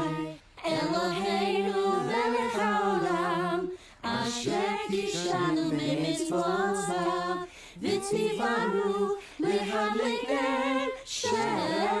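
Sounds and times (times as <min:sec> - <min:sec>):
person singing wordless melody: 0:00.0 - 0:09.6.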